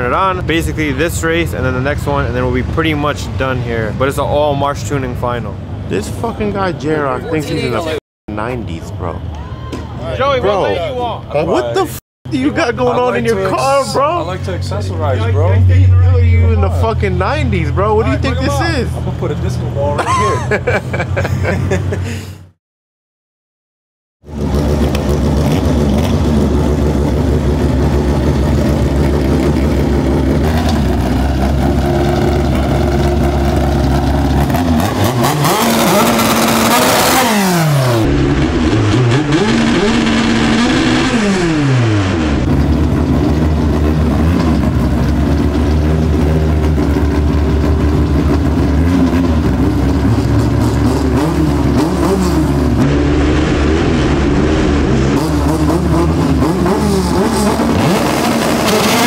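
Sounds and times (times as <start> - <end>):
race car engines revving: 0.0 - 22.2, 24.3 - 59.0.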